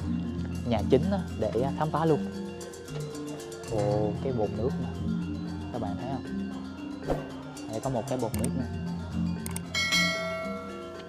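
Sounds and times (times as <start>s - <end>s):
background music low notes: 0.0s - 11.0s
bell-like chime ringing: 9.7s - 11.0s.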